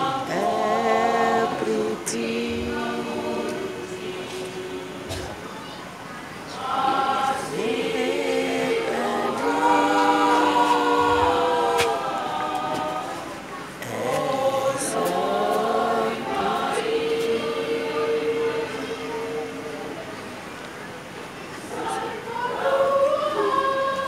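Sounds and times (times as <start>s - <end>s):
choir singing long notes: 0.0s - 5.8s, 6.4s - 24.0s.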